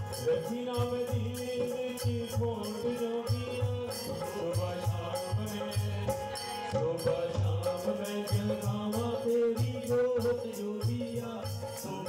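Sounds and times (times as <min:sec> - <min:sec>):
hand drums: 0:00.0 - 0:12.0.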